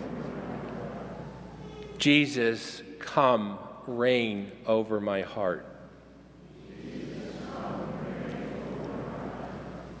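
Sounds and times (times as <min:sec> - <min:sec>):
congregation shuffling: 0:00.0 - 0:10.0.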